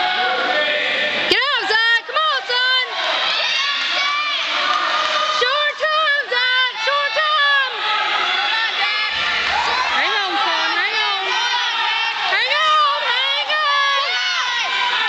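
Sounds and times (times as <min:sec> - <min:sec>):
spectators yelling and cheering: 0:00.0 - 0:15.0.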